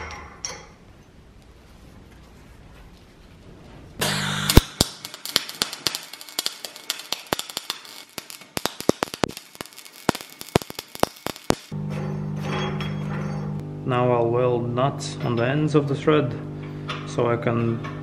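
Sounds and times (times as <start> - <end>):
steady low hum: 3.4 - 17.5
welding arc crackling: 4.0 - 11.8.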